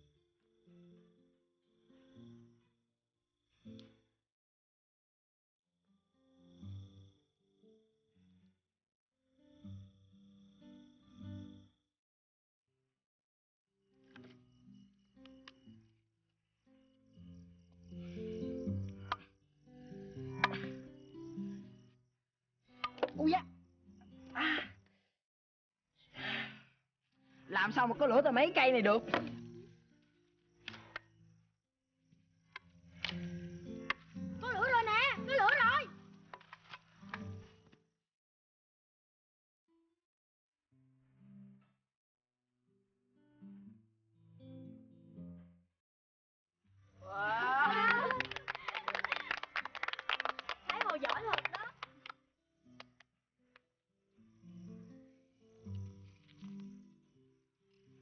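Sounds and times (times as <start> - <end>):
soft background music: 27.5 - 30.8
children cheering: 47.0 - 51.7
people clapping: 47.2 - 52.2, 52.8 - 53.1.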